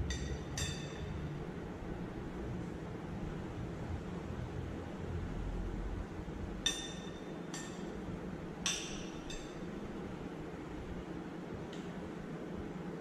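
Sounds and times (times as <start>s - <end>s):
steady low hum: 0.0s - 13.0s
metal spoon clinking on glass plate: 0.1s - 1.2s, 8.7s - 9.6s.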